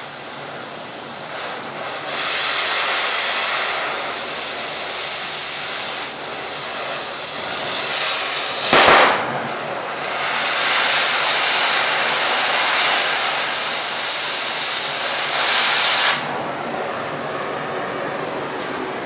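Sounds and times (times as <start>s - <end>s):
cutting torch hissing: 1.0s - 17.6s.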